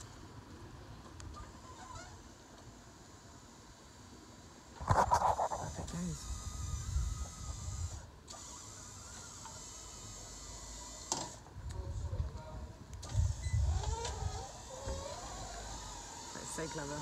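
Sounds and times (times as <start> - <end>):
electric motor whine: 4.9 - 12.2, 13.0 - 17.0.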